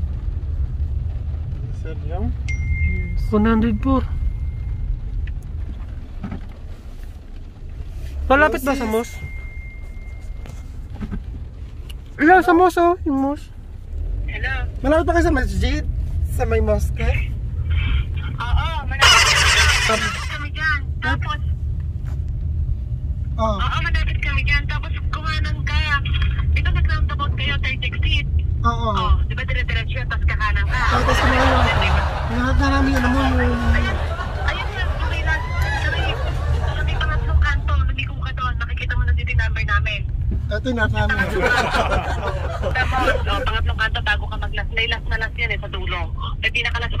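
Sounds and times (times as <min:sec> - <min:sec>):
car cabin rumble: 0:00.0 - 0:47.0
people talking: 0:08.3 - 0:09.3, 0:16.4 - 0:21.5, 0:23.4 - 0:47.0
loud burst of noise: 0:19.0 - 0:20.4.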